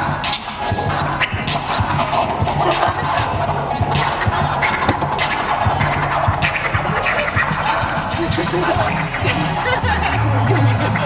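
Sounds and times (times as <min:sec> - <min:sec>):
music with steady beat and bass: 0:00.0 - 0:11.0.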